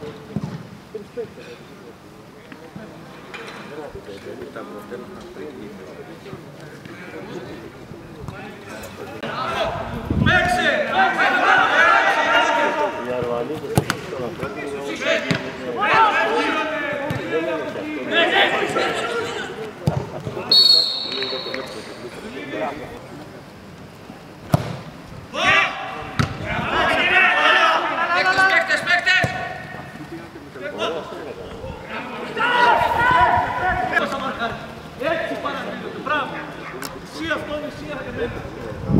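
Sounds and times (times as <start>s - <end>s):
short high whistle: 20.5s - 21.9s
football kick thuds: 26.2s - 26.4s.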